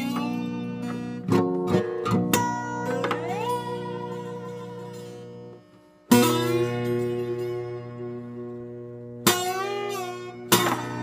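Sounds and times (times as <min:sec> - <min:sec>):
slide guitar chords: 0:00.0 - 0:11.0.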